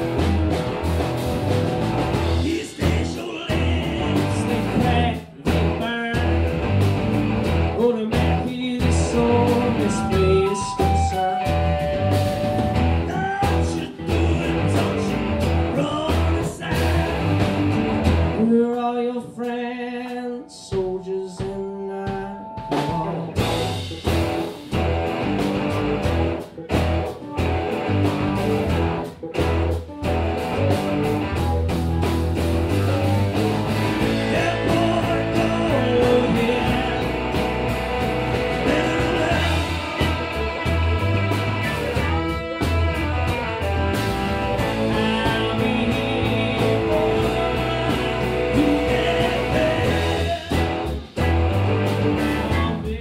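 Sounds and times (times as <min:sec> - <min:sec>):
live rock band playing: 0:00.0 - 0:53.0
guitar chords ringing: 0:09.0 - 0:13.1, 0:20.3 - 0:52.6.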